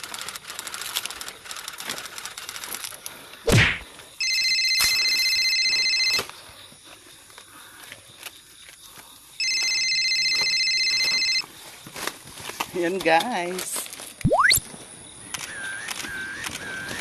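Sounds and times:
faint clicks and rustling: 0.0s - 3.4s
telephone ringing: 4.2s - 6.3s, 9.4s - 11.5s.

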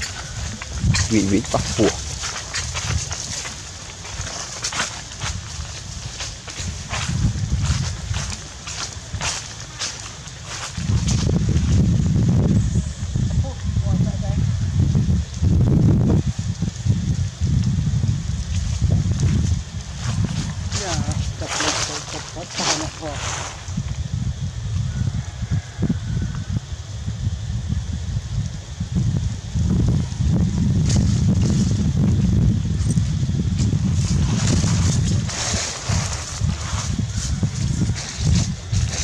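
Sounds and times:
dry leaves rustling and crackling: 0.0s - 13.6s, 15.0s - 25.0s, 29.2s - 39.0s
wind buffeting microphone: 0.0s - 39.0s.

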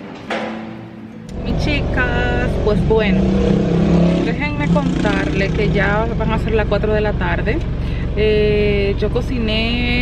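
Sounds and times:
woman talking: 1.3s - 3.5s, 4.2s - 10.0s.

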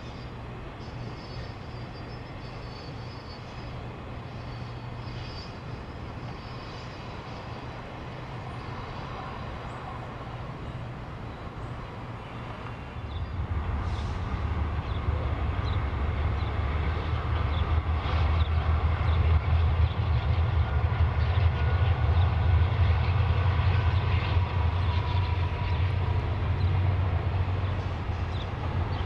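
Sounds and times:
diesel locomotive engine rumble: 0.0s - 29.0s.

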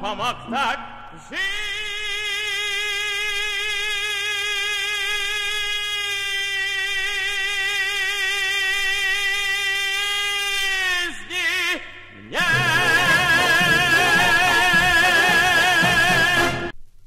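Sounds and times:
tenor voice singing long high note: 12.2s - 16.7s.

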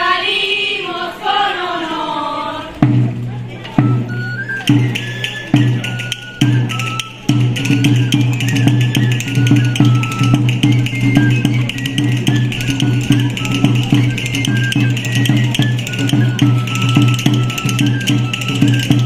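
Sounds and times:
folk dance melody: 0.0s - 19.0s
steady drum beat: 2.8s - 19.0s.

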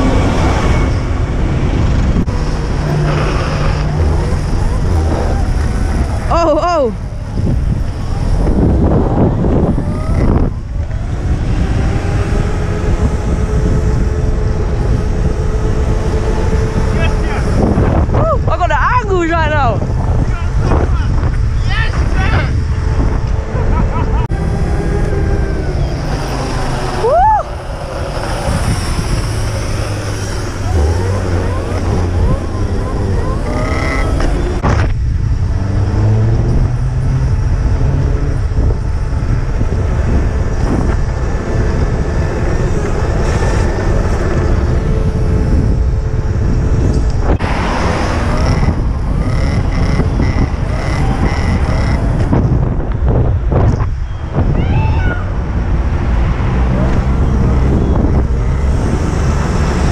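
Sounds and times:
wind rumbling on microphone: 0.0s - 59.9s.

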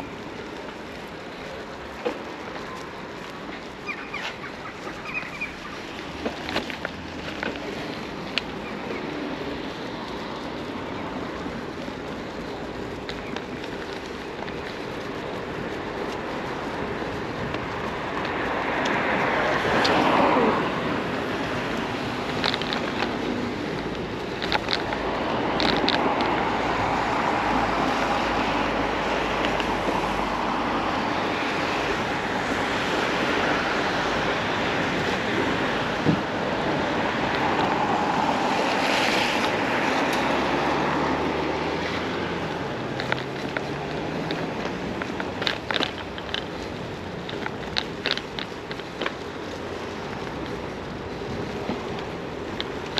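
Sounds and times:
bicycle tyres rolling on paving: 0.0s - 52.9s
wind noise on microphone: 4.4s - 52.9s.

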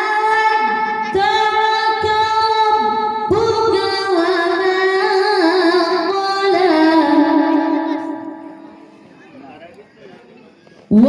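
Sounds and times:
boy reciting melodically into microphone: 0.0s - 9.1s, 10.6s - 11.0s.

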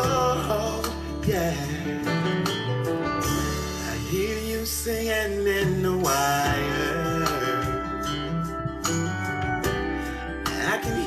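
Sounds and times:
country song with band: 0.0s - 11.0s.

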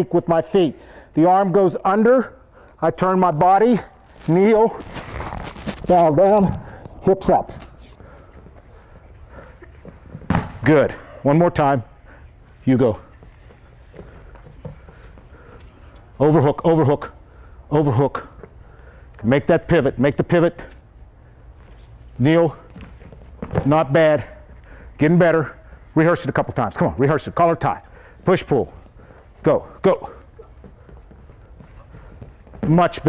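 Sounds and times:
shoes scuffing on foam mat: 4.0s - 6.1s.

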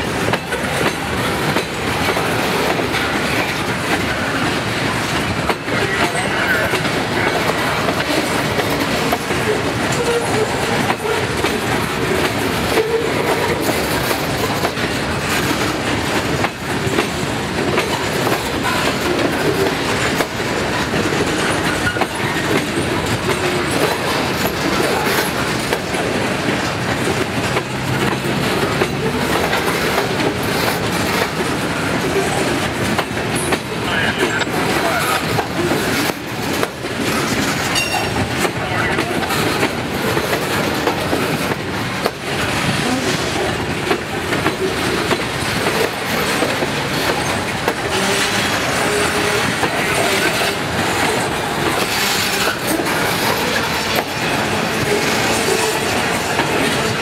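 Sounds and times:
steel wheels rumbling on rail: 0.0s - 57.0s
wheels clicking over rail joints: 0.0s - 57.0s.

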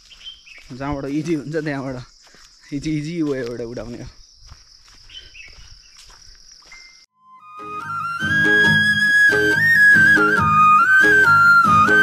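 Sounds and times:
insects droning: 0.0s - 7.0s.

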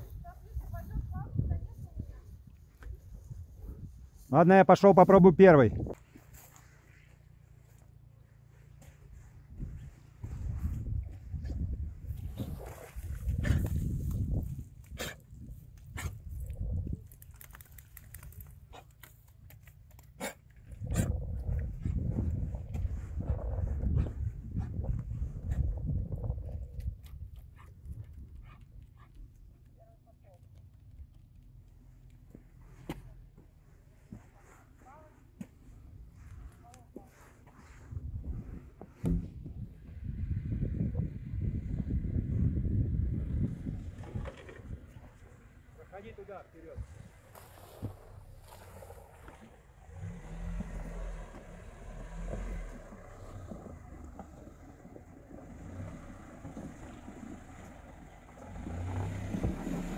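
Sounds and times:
wind buffeting microphone: 0.0s - 4.3s, 5.6s - 6.1s, 9.1s - 17.2s, 20.6s - 29.4s, 37.6s - 45.7s.

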